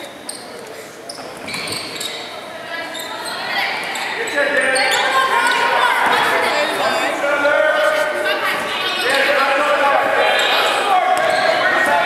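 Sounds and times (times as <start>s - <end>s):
voices echoing in a gym: 0.0s - 12.0s
short high squeaks: 0.2s - 5.6s.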